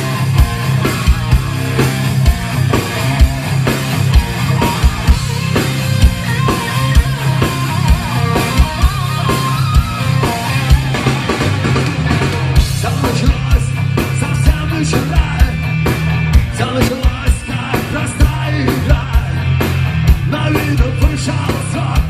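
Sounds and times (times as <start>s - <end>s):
bass guitar: 0.0s - 22.0s
drum kit steady beat: 0.0s - 22.0s
electric guitars: 0.0s - 22.0s
sustained guitar lead line: 0.0s - 22.0s.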